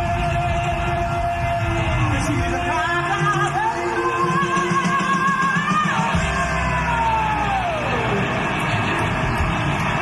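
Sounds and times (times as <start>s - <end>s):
bass and drums rumble: 0.0s - 10.0s
live rock band: 0.0s - 10.0s.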